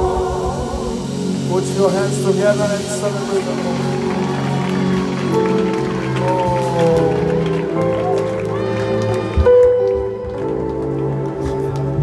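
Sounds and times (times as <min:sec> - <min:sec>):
person singing: 0:00.0 - 0:04.5
keyboard chords: 0:00.0 - 0:12.0.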